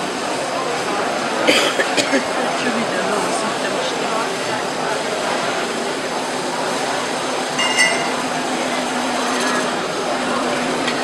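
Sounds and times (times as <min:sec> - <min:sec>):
high squeak: 0:07.6 - 0:08.2.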